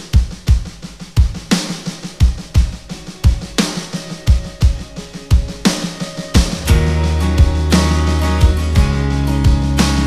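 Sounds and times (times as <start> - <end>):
rock drum beat: 0.0 - 10.0.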